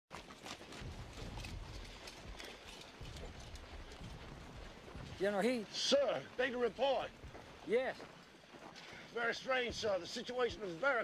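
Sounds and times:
horse hooves on dirt road: 0.1s - 11.0s.

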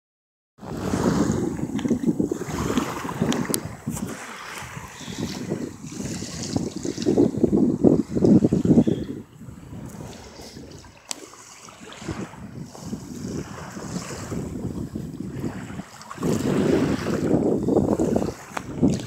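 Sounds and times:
small waves lapping: 0.6s - 19.0s
wind buffeting microphone: 0.6s - 19.0s.

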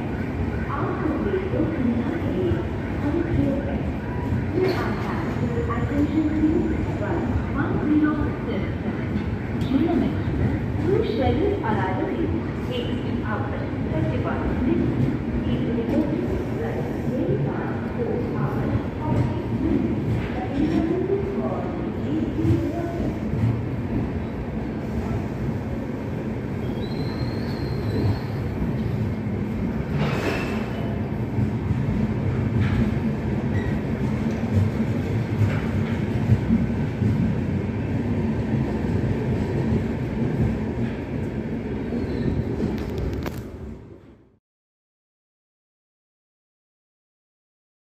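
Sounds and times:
train rumbling: 0.0s - 44.3s
train clanks: 29.8s - 37.5s.

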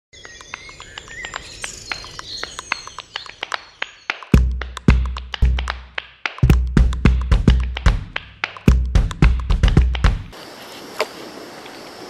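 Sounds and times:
birds chirping and calling: 0.2s - 4.3s.

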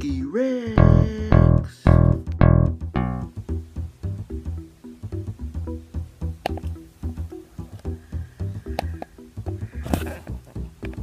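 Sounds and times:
intro music with heavy low notes: 0.8s - 11.0s.

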